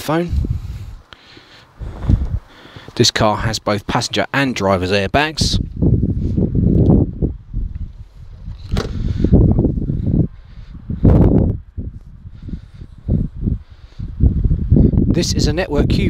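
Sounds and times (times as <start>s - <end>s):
wind buffeting microphone: 0.0s - 1.1s, 1.7s - 4.0s, 5.1s - 16.0s
car door shutting: 8.6s - 9.2s.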